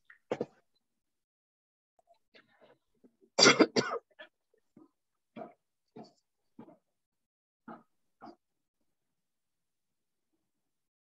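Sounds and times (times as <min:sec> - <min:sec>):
person coughing: 0:03.4 - 0:04.3.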